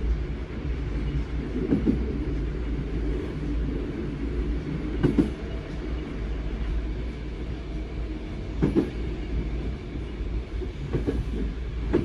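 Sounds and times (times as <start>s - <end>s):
train wheels rumbling on track: 0.0s - 12.0s.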